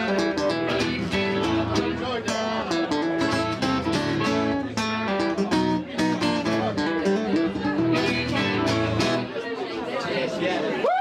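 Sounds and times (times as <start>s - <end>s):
acoustic guitars playing blues: 0.0s - 10.0s
crowd chatter: 0.0s - 11.0s.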